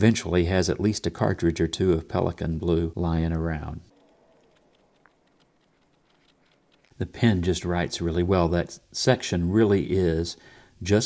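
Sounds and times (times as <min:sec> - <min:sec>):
fountain pen scratching on paper: 0:03.9 - 0:07.0.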